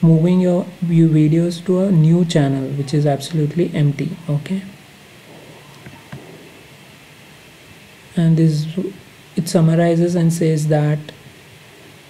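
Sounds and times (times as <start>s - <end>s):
low background hiss: 0.0s - 12.0s.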